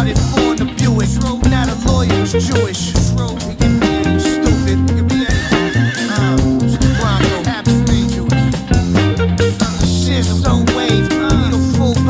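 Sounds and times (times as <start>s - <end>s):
instrumental rock band music: 0.0s - 12.0s
sliding lead guitar note: 0.0s - 12.0s.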